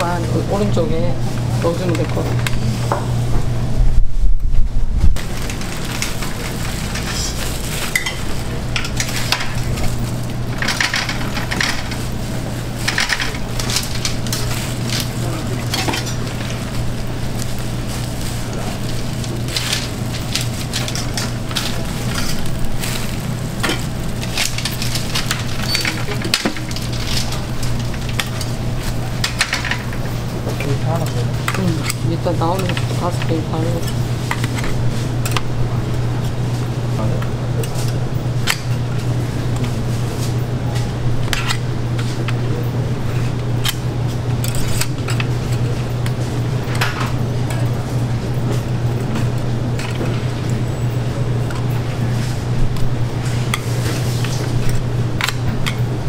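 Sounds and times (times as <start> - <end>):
low machine hum: 0.0 - 56.0
waffle iron sizzling: 5.2 - 30.5
metal tongs clinking on trays: 6.9 - 9.9, 12.8 - 16.8, 19.2 - 35.5.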